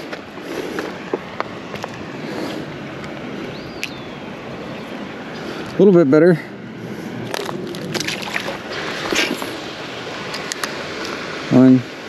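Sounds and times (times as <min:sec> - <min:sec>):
water sloshing: 0:06.9 - 0:11.3
small water splashes: 0:07.2 - 0:11.5.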